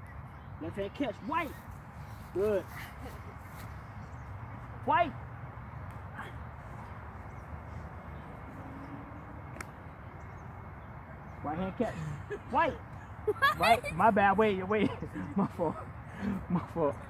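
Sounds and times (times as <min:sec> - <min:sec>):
outdoor background noise: 0:00.0 - 0:17.0.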